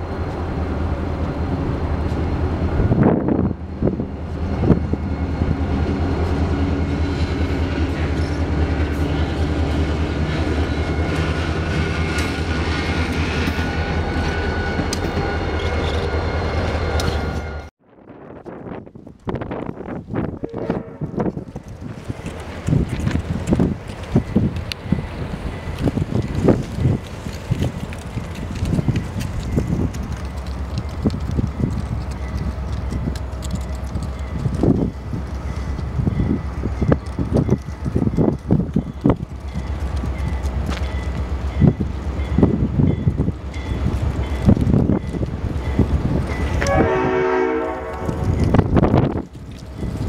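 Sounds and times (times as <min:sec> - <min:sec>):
train rumbling: 0:00.0 - 0:50.0
wind buffeting microphone: 0:00.3 - 0:50.0
locomotive air horn chord: 0:46.6 - 0:48.2.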